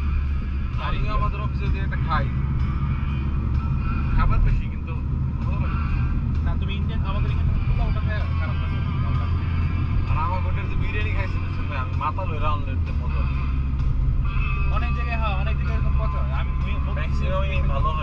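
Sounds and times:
car engine cabin drone: 0.0s - 18.0s
road noise: 0.0s - 18.0s
voices talking: 0.8s - 13.7s.

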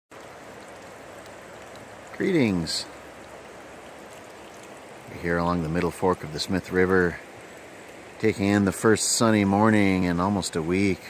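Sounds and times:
river water flowing: 0.1s - 11.0s.

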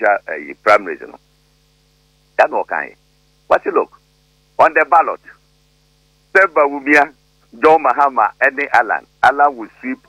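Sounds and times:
low electrical hum: 0.0s - 10.0s
man speaking: 2.4s - 4.0s, 4.6s - 5.4s, 6.3s - 10.0s.

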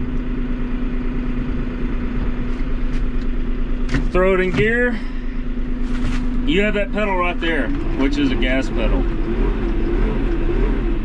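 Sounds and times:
tractor diesel engine idling: 0.0s - 9.3s.

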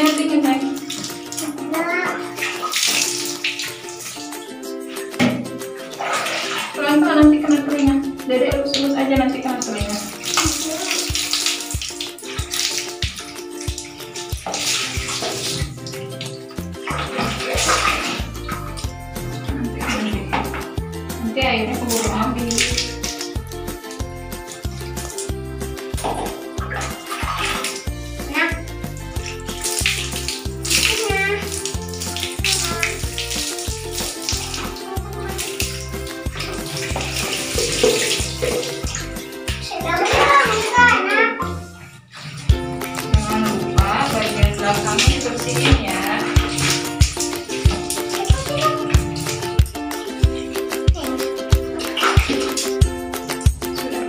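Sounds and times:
background music with steady beat: 0.0s - 54.0s
water pouring and splashing: 0.0s - 54.0s
background music with bass beat: 42.4s - 54.0s.

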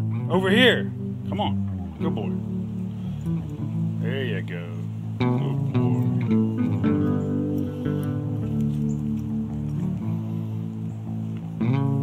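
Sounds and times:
plucked guitar and bass music: 0.0s - 12.0s.

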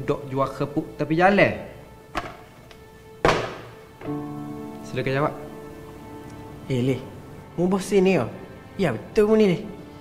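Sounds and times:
held note of background music: 0.0s - 10.0s
folder slapped on desk: 2.2s - 2.4s, 3.2s - 3.7s.

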